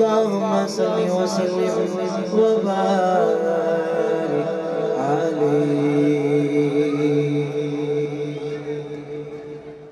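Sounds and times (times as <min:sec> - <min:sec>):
man chanting into a microphone: 0:00.0 - 0:09.9.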